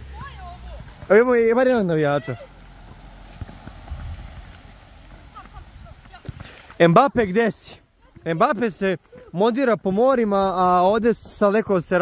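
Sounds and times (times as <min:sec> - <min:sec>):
running footsteps on court: 0:00.0 - 0:12.0
ball touches: 0:02.6 - 0:07.3
man's voice: 0:06.8 - 0:12.0.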